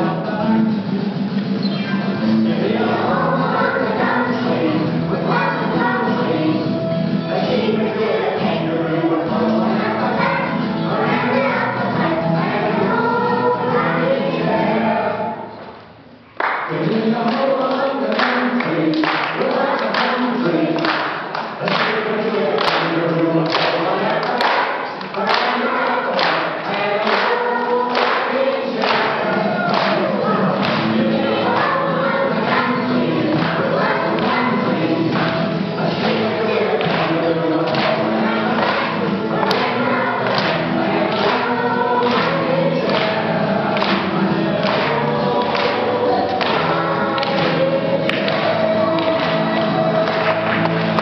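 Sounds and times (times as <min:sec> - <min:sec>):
girls singing together: 0:02.2 - 0:15.6, 0:16.4 - 0:51.0.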